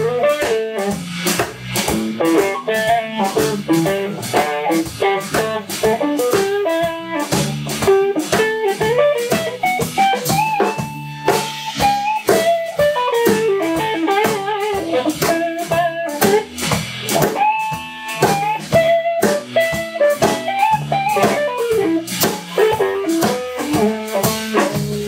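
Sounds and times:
bass guitar: 0:00.0 - 0:25.0
drum kit steady beat: 0:00.0 - 0:25.0
electric guitar lead lines: 0:00.0 - 0:25.0.

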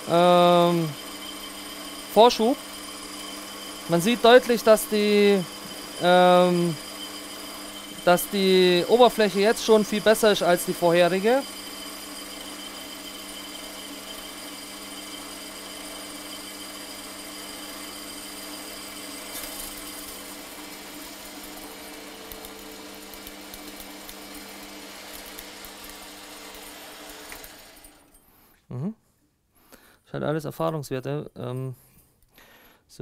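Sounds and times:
metal lathe whining: 0:00.0 - 0:28.2.

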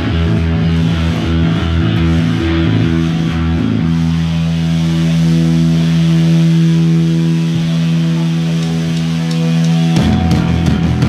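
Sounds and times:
distorted electric guitars and bass: 0:00.0 - 0:11.0
drums: 0:00.0 - 0:11.0.

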